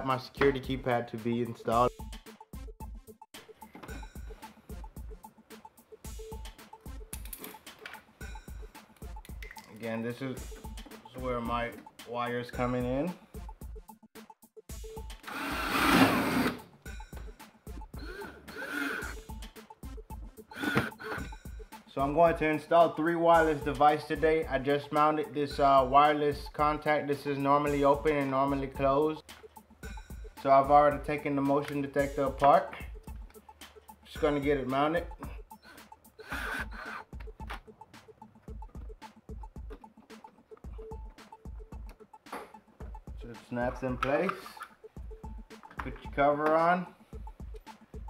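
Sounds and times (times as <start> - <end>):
background music with beat: 0.0 - 48.0
cordless drill driving screw: 15.2 - 16.6, 20.5 - 21.3.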